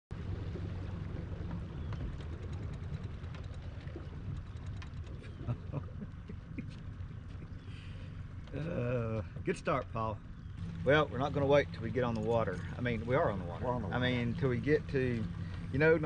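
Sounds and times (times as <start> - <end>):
outboard engine idling: 0.1 - 16.0.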